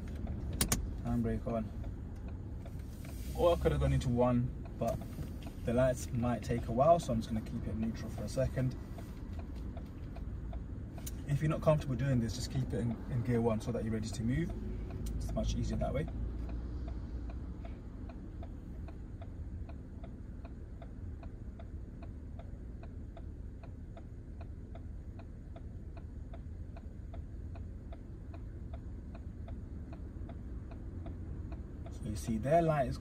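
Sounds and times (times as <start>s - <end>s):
car engine idling: 0.0s - 33.0s
turn signal ticking: 0.0s - 33.0s.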